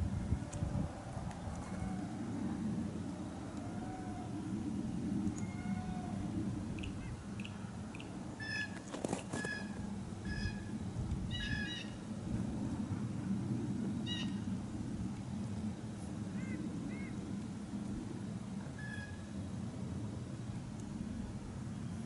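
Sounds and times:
low rumble: 0.0s - 8.4s.

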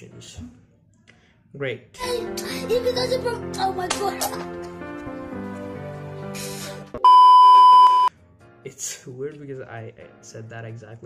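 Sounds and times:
electronic test tone beep: 7.0s - 8.1s.

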